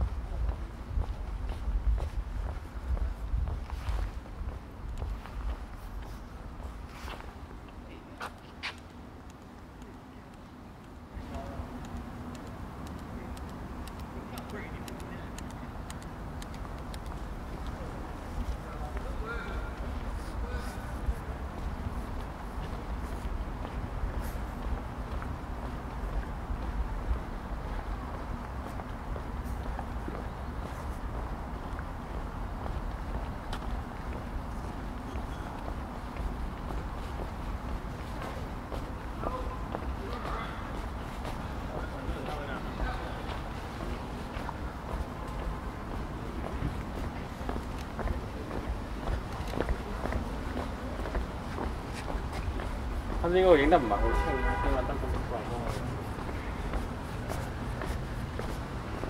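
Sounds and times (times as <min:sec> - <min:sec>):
steady low rumble: 0:00.0 - 0:08.0
footsteps on pavement: 0:00.0 - 0:59.0
murmur of people talking: 0:09.4 - 0:59.0.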